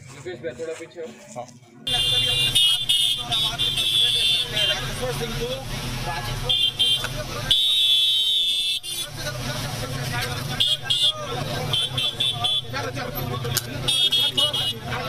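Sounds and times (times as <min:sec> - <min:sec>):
crowd chatter: 0:00.0 - 0:15.0
shrill vehicle horn toots: 0:01.9 - 0:04.9, 0:06.5 - 0:09.1, 0:10.6 - 0:12.8, 0:13.8 - 0:14.9.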